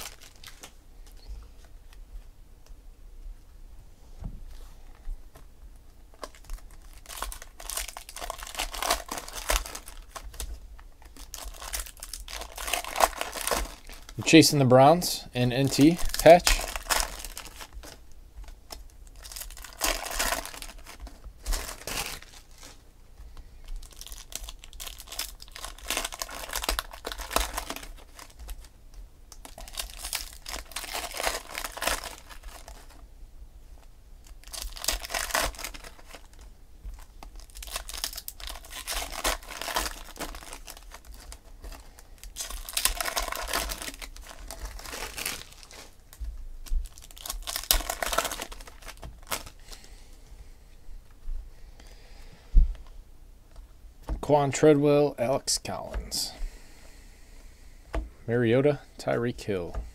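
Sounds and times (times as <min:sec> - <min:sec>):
foil wrappers tearing and crinkling: 0:00.0 - 0:00.8, 0:06.1 - 0:22.8, 0:23.7 - 0:33.0, 0:34.2 - 0:49.9.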